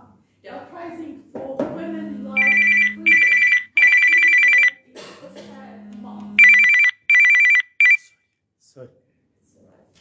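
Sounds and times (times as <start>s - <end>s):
telephone ringing: 2.4s - 4.8s, 6.4s - 8.0s.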